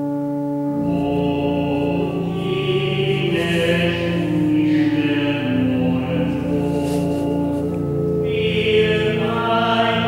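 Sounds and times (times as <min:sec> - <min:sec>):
sustained accompaniment: 0:00.0 - 0:10.0
slow sung hymn: 0:00.2 - 0:10.0.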